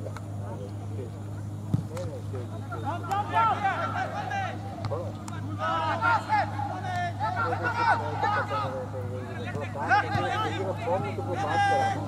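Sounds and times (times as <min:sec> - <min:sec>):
steady low hum: 0:00.0 - 0:12.0
players shouting: 0:02.5 - 0:12.0.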